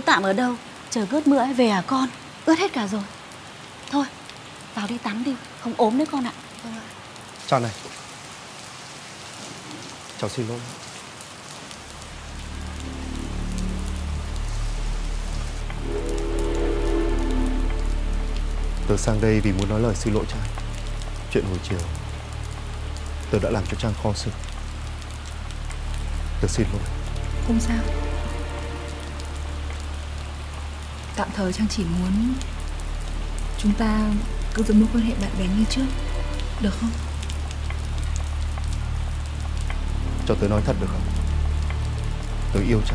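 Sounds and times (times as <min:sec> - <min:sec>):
steady rain: 0:00.0 - 0:42.9
soft background music: 0:11.7 - 0:42.9
low rumble: 0:11.8 - 0:23.4.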